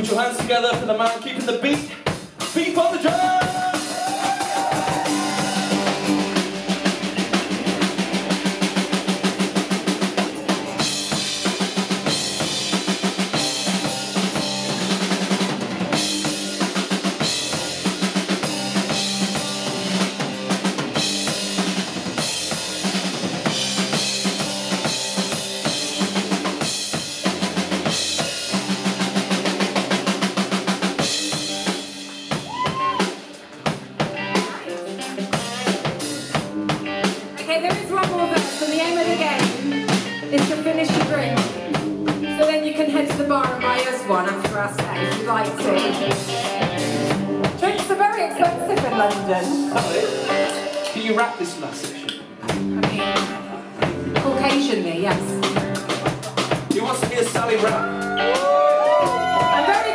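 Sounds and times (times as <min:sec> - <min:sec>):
rock drum solo: 0:00.0 - 0:59.9.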